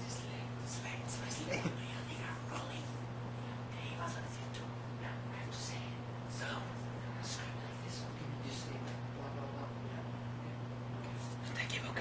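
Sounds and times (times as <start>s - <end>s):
steady low hum: 0.0s - 12.0s
man speaking quietly: 3.8s - 10.7s.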